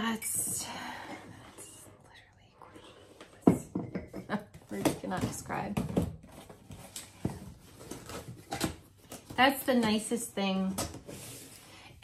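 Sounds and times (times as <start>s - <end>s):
woman whispering: 0.6s - 3.2s.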